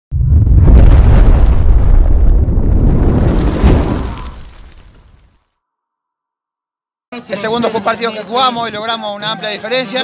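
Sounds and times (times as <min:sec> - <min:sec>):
deep rumbling boom: 0:00.1 - 0:05.2.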